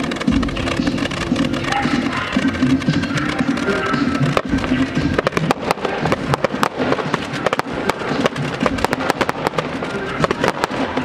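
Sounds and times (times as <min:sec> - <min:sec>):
fireworks bangs and pops: 0:00.0 - 0:11.0
music playing: 0:00.0 - 0:11.0.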